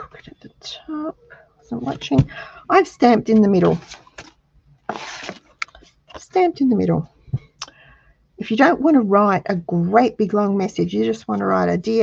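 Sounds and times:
paper card scraping on mat: 0:03.6 - 0:05.5.

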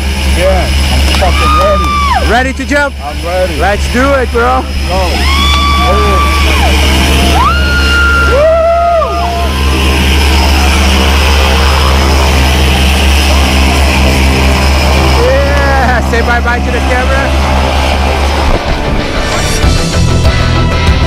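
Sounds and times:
propeller airplane engine droning: 0:00.0 - 0:21.0.

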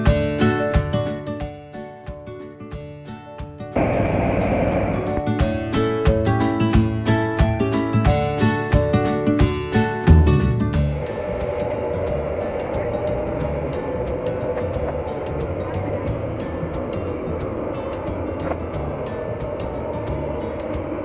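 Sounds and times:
aircraft machinery drone: 0:03.8 - 0:06.0, 0:10.8 - 0:21.0.

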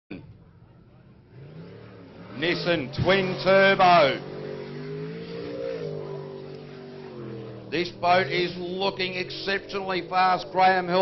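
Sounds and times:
distant boat engine running: 0:00.3 - 0:11.0.

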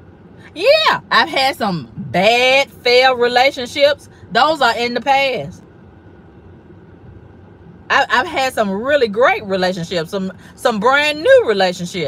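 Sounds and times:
low hum in car cabin: 0:00.0 - 0:12.0
woman speaking: 0:00.5 - 0:05.6, 0:07.9 - 0:12.0.

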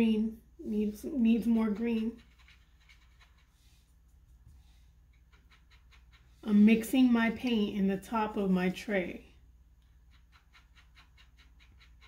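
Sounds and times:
low steady hum: 0:00.0 - 0:12.0
paintbrush scratching in plastic lid: 0:01.3 - 0:06.9.

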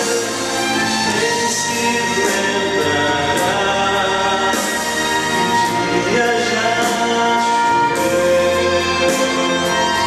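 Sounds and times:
man singing into a microphone: 0:00.0 - 0:10.0
orchestral accompaniment: 0:00.0 - 0:10.0.

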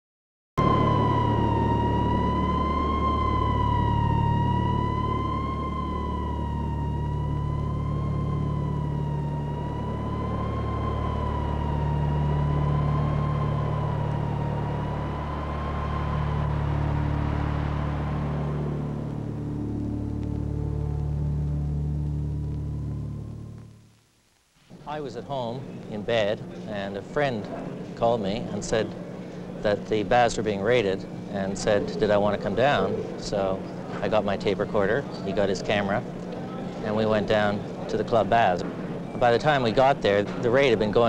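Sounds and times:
wavering siren-like tone: 0:00.6 - 0:23.7
steady low rumble: 0:00.6 - 0:24.1.

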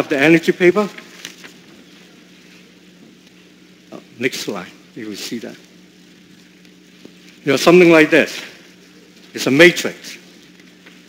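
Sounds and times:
person speaking: 0:00.0 - 0:01.2, 0:07.4 - 0:08.7, 0:09.3 - 0:10.3
steady low hum: 0:00.0 - 0:11.0.

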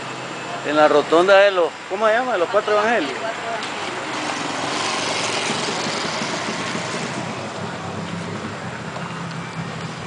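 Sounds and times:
vehicle passing by: 0:03.2 - 0:10.0.

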